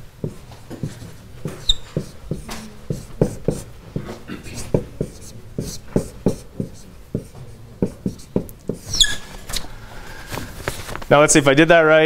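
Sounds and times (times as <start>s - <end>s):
whiteboard marker squeaking: 0.8s - 9.6s.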